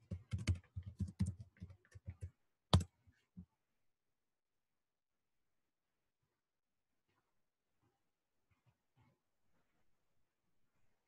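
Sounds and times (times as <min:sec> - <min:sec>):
keyboard typing: 0:00.0 - 0:02.9.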